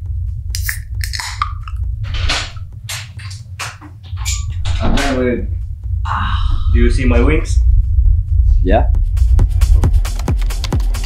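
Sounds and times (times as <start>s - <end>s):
muffled bass music: 0.0s - 11.0s.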